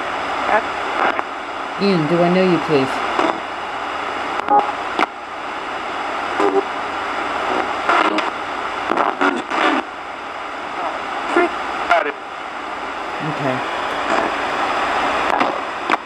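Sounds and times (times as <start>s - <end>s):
radio static hiss: 0.0s - 16.0s
fragments of broadcast voices: 0.2s - 16.0s.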